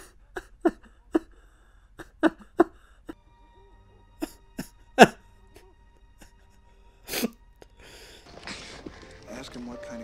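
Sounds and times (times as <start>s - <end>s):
man sobbing: 0.0s - 3.2s, 4.2s - 5.3s.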